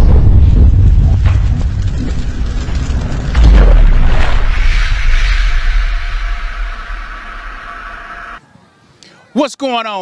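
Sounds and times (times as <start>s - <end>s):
deep impact boom: 0.0s - 8.4s
rumbling hissing tail: 0.0s - 8.4s.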